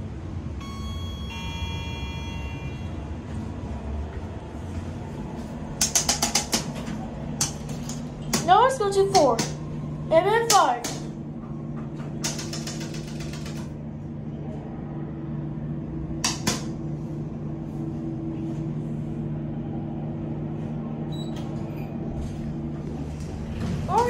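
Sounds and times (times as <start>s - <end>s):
elevator machinery hum: 0.0s - 24.0s
elevator door opening: 0.6s - 3.4s, 10.5s - 13.8s, 21.1s - 24.0s.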